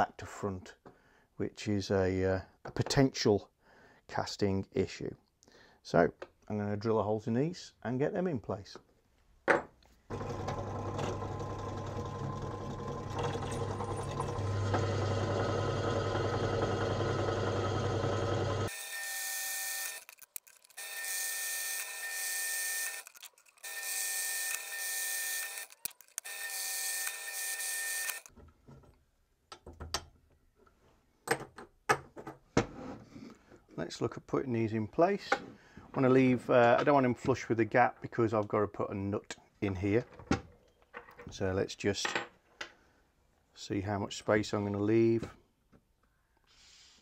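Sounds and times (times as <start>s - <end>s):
drill press motor hum: 10.1s - 20.1s, 20.8s - 28.3s
drill whining through steel: 10.1s - 28.3s
clicks and knocks of metal parts: 19.9s - 20.8s, 22.9s - 23.7s, 25.5s - 26.3s.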